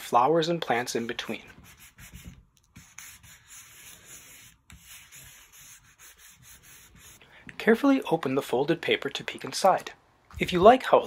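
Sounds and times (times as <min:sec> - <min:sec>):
wooden spoon scraping paper: 0:00.8 - 0:07.2.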